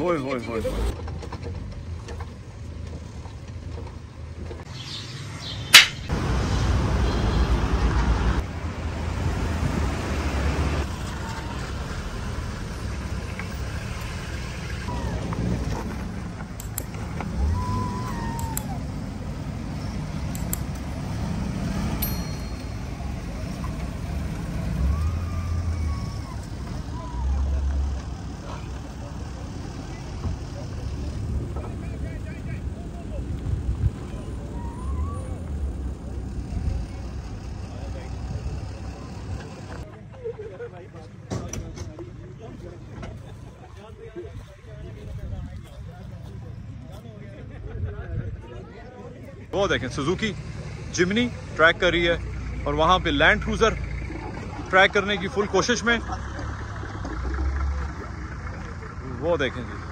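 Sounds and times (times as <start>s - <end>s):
car engine rumbling: 0.0s - 39.9s, 49.6s - 59.9s
sharp knock: 5.6s - 6.1s.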